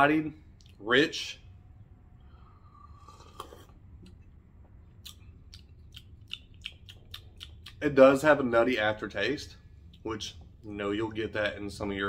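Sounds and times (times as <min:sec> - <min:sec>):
sip from coffee cup: 0:02.6 - 0:03.9
wet mouth clicks and lip smacks: 0:04.9 - 0:07.8.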